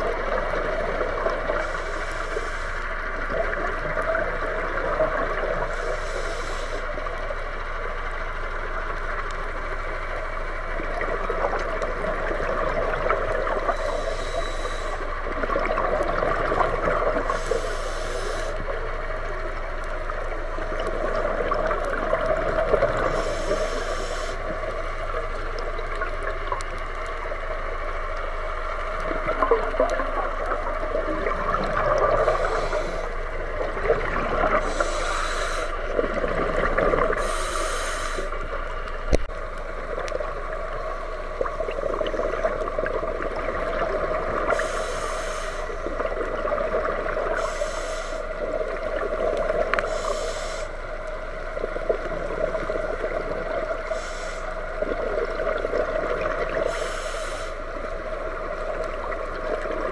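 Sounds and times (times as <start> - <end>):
underwater bubbling and gurgling: 0.0 - 59.9
hissing regulator breaths: 1.6 - 2.9, 5.6 - 6.9, 13.6 - 15.2, 17.2 - 18.7, 23.0 - 24.5, 32.1 - 33.2, 34.5 - 35.9, 37.0 - 38.4, 44.5 - 45.9, 47.3 - 48.3, 49.8 - 50.8, 53.8 - 54.6, 56.5 - 57.6.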